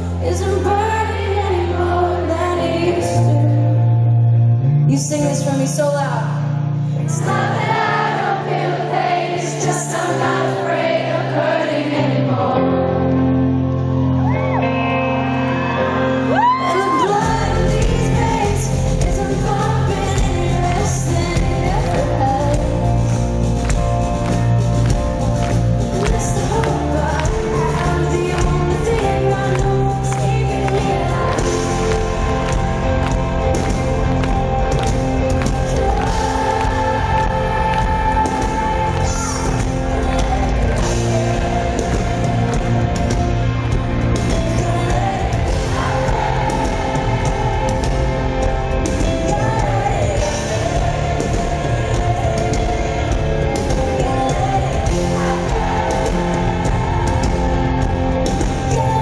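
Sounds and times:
rock band playing live: 0.0 - 59.0.

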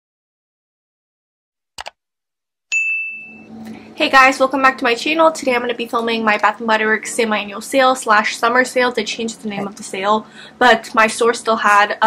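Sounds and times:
notification bell ding: 2.7 - 3.5
faint room hum: 3.2 - 12.0.

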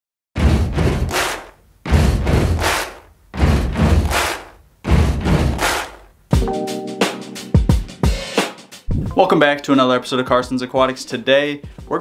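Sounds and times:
deep booming impact hits: 0.4 - 5.9, 8.9 - 9.2.

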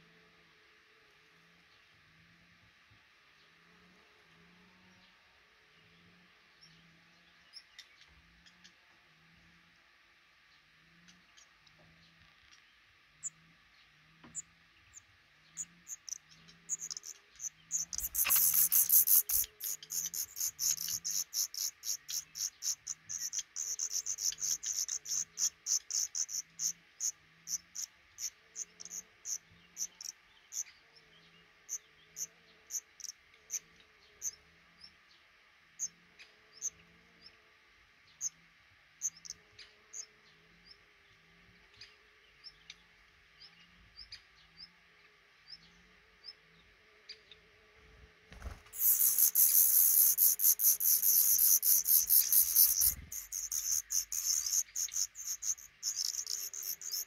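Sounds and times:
nestlings high-pitched peeping: 15.6 - 30.7, 32.2 - 33.6, 48.4 - 57.0.

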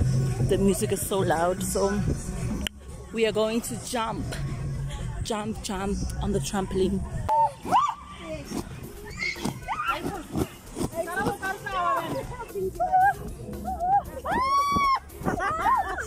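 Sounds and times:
women laughing and squealing: 7.3 - 10.4, 12.0 - 16.0.

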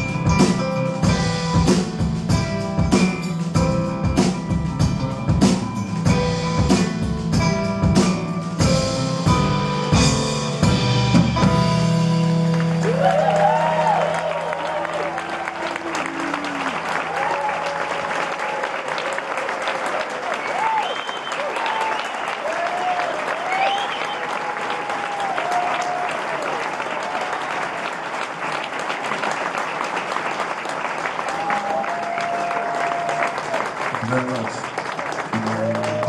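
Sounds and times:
audience applauding and cheering: 11.8 - 36.0
whoops: 12.8 - 27.7, 31.2 - 33.7, 35.4 - 36.0.

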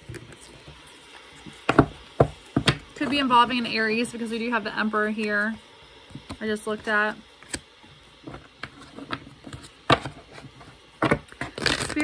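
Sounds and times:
cards being shuffled: 8.6 - 12.0.

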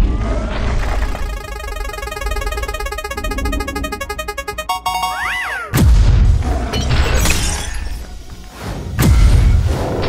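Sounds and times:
cartoon crash effect: 1.0 - 5.9
background music: 1.2 - 5.9.

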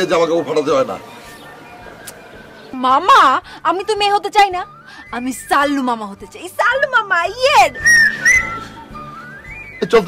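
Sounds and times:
soft background music: 0.0 - 10.0
person whistling: 7.7 - 9.8.

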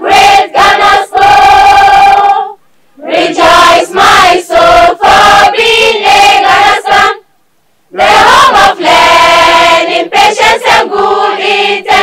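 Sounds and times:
children's choir singing unaccompanied: 0.0 - 7.2, 7.9 - 12.0.

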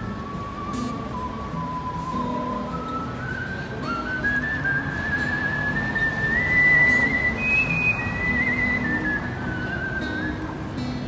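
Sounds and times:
person whistling a slow melody: 0.0 - 10.9.

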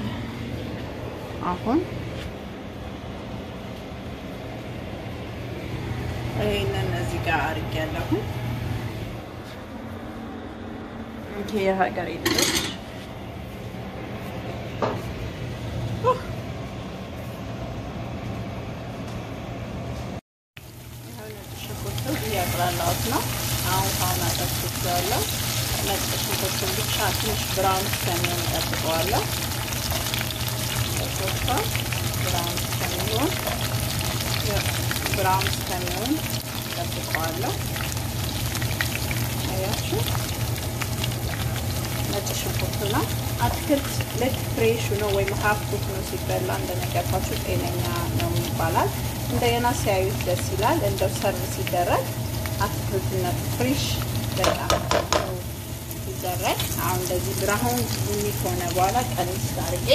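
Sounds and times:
food sizzling in a frying pan: 20.6 - 59.9.

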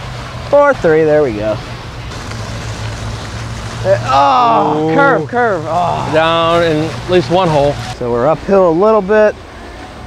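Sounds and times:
even hiss: 0.0 - 10.0
low constant hum: 0.0 - 10.0.

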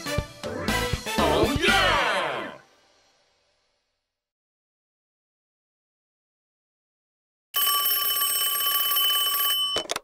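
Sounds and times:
telephone bell ringing: 7.6 - 10.0.

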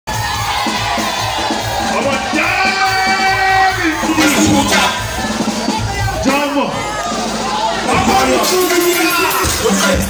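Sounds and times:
live party music with drum beat: 0.0 - 10.0
crowd cheering: 0.1 - 10.0.

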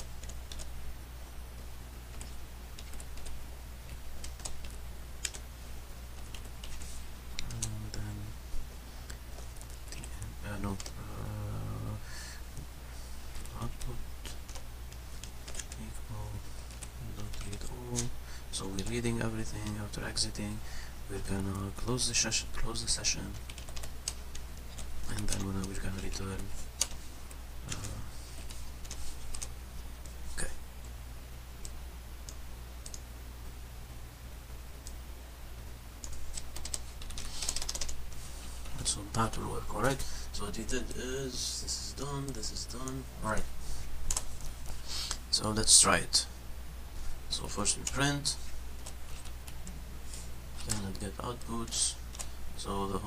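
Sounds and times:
keyboard typing: 0.0 - 0.7, 2.1 - 5.4, 6.2 - 8.1, 9.3 - 11.3, 13.3 - 15.9, 16.6 - 19.0, 23.3 - 30.2, 31.6 - 33.1, 36.0 - 38.2, 44.1 - 44.5.

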